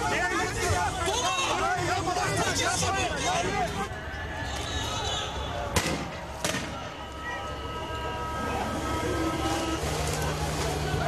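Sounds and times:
faint shouting voices: 0.0 - 11.0
steady street noise: 0.0 - 11.0.

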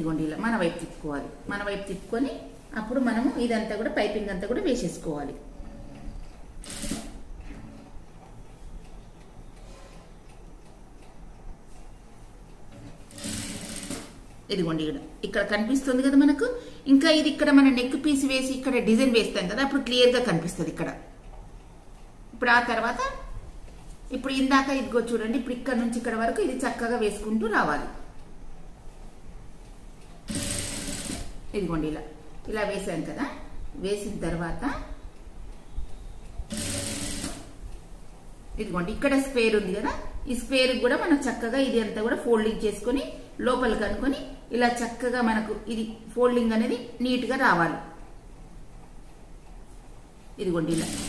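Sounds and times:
sewing machine humming: 5.5 - 7.9, 13.0 - 14.2, 30.3 - 31.4, 36.5 - 37.6, 50.7 - 51.0
sewing machine fast stitching: 6.6 - 7.2, 13.1 - 14.2, 30.3 - 31.4, 36.5 - 37.5, 50.7 - 51.0.

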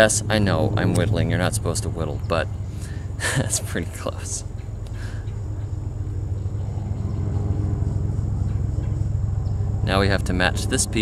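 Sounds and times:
low hum: 0.0 - 11.0
low motor rumble: 0.0 - 11.0.

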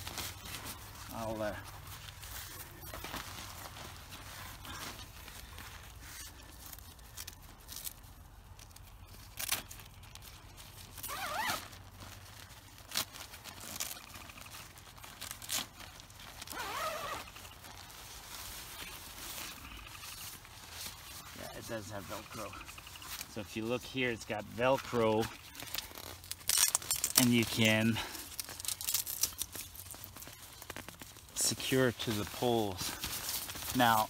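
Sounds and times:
nylon tent fabric rustling: 0.0 - 34.0
velcro ripping: 0.0 - 34.0.

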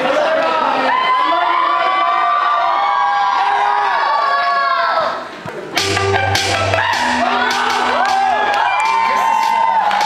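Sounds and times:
audience cheering: 0.3 - 5.2, 6.4 - 10.0.

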